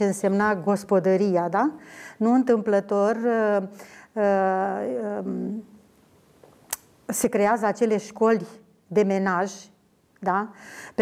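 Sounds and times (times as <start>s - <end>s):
woman speaking: 0.0s - 5.8s, 7.1s - 11.0s.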